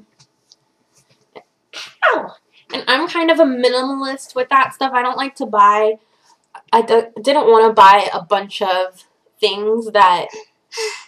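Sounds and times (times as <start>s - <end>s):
person's sharp breathy burst: 10.3s - 11.0s.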